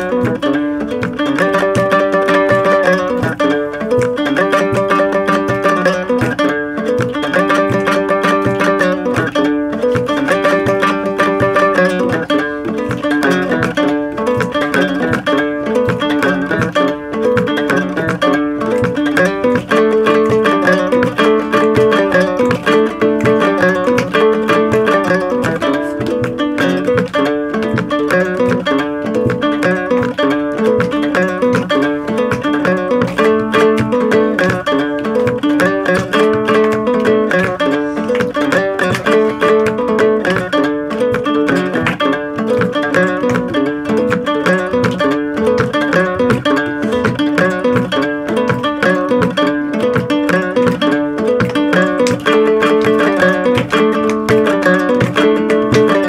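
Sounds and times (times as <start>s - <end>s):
plucked acoustic guitar: 0.0s - 56.0s
small lute: 0.0s - 56.0s.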